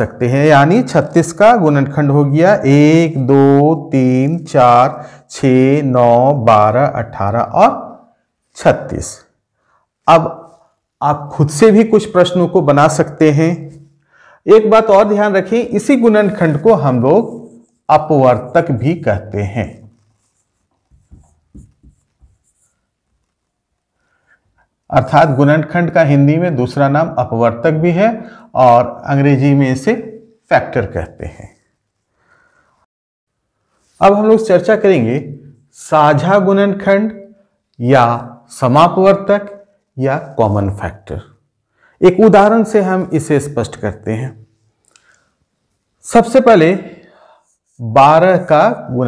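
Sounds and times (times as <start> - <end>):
man's voice: 14.5 - 20.0
marker squeaking on whiteboard: 19.8 - 23.4.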